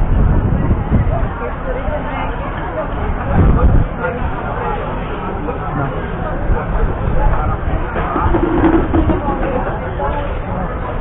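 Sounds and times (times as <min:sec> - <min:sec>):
indistinct chatter: 0:00.0 - 0:11.0
low rumble: 0:07.8 - 0:09.8.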